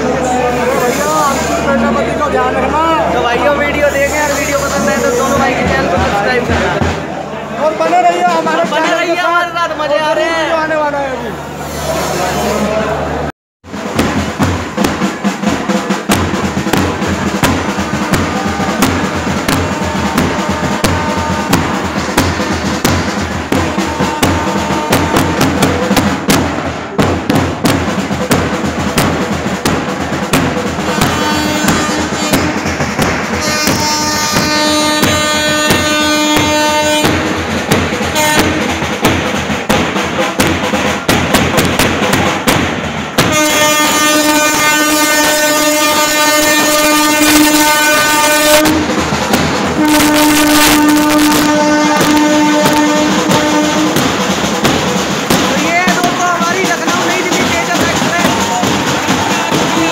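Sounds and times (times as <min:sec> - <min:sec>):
marching band drums beating: 0:00.0 - 0:09.6, 0:13.6 - 0:59.9
crowd voices: 0:00.0 - 0:59.9
locomotive horn blast: 0:00.5 - 0:01.8, 0:03.8 - 0:05.6, 0:17.5 - 0:22.2, 0:23.3 - 0:26.0, 0:30.8 - 0:37.4, 0:38.1 - 0:38.7, 0:43.3 - 0:49.0, 0:49.7 - 0:54.2.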